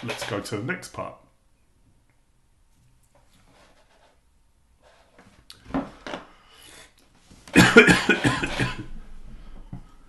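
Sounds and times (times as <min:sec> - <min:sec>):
man coughing: 0:07.5 - 0:08.9.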